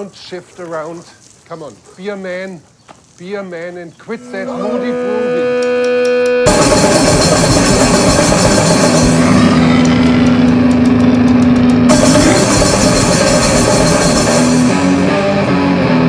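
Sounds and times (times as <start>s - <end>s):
held guitar note: 4.2s - 16.0s
grindcore band playing: 4.4s - 16.0s.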